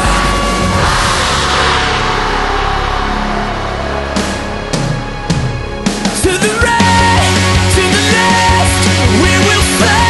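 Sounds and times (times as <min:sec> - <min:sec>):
loud rushing roar: 0:00.0 - 0:07.2
low music drone: 0:00.0 - 0:07.9.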